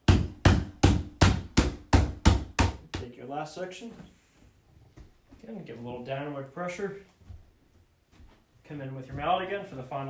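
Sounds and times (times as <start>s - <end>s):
mallet striking plastic: 0.0s - 3.0s.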